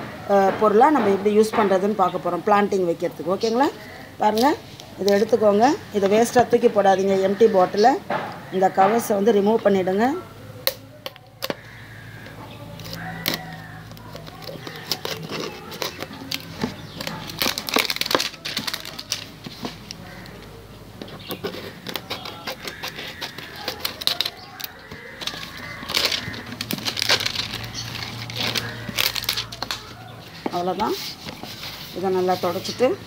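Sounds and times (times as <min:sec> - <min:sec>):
plastic label crinkling: 0:10.6 - 0:33.0
scissors snipping: 0:12.8 - 0:20.4, 0:21.2 - 0:30.0.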